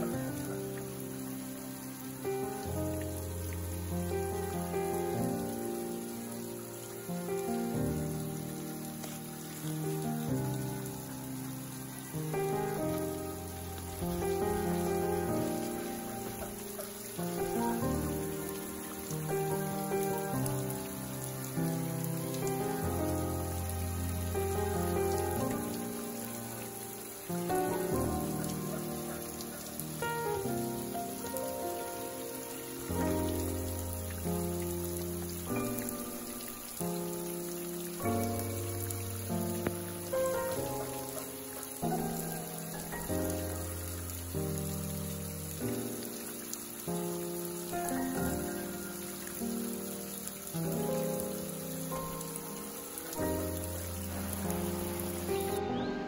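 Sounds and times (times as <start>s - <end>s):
water trickling and dripping: 0.0s - 55.6s
slow music with held chords: 0.0s - 56.0s.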